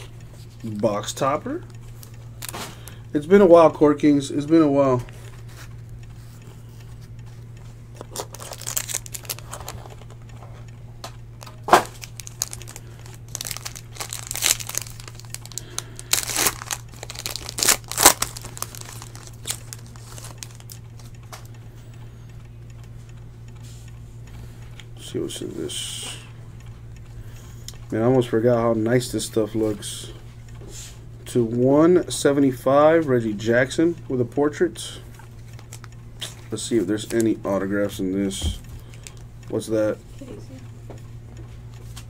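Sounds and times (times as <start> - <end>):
foil wrapper crinkling and tearing: 8.0 - 10.0, 11.4 - 20.8.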